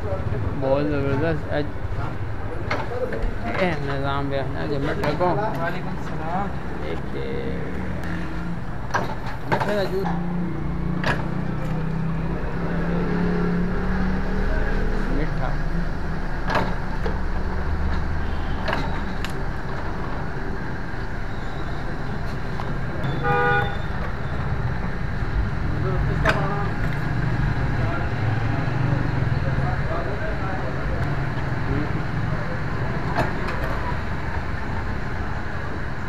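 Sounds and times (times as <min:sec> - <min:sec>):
vehicle horn toot: 0:18.2 - 0:18.7, 0:23.0 - 0:24.0.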